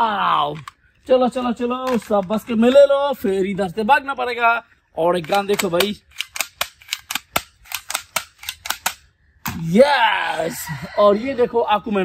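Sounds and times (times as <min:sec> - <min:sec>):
toy rifle clicking: 0:05.2 - 0:09.1.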